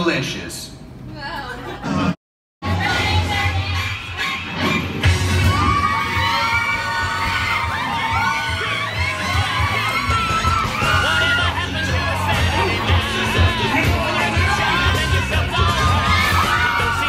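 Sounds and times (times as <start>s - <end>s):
crowd screaming and shouting: 2.6s - 17.0s
loud music with bass beat: 2.6s - 17.0s.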